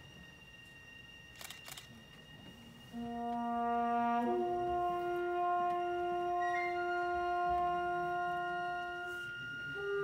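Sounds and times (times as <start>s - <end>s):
faint steady high whine: 0.0s - 10.0s.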